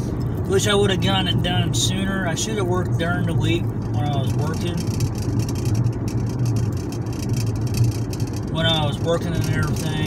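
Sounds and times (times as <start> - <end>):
car engine and road noise: 0.0 - 10.0.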